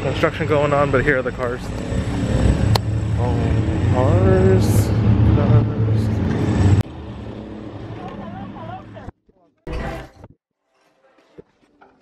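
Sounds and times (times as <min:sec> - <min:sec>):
low outdoor rumble: 0:00.0 - 0:09.2.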